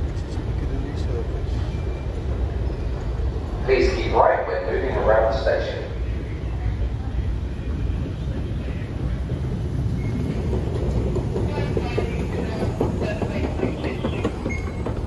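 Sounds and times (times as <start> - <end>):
escalator rumbling: 0.0 - 15.0
clacking of escalator steps: 4.9 - 15.0.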